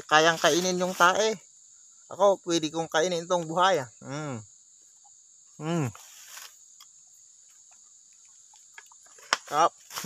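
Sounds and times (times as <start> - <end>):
high-pitched insect drone: 0.0 - 10.0
brief rustle: 6.0 - 6.6.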